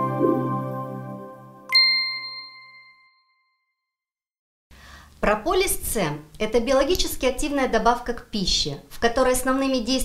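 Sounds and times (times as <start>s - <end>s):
bright bell-like chime: 1.7s - 3.7s.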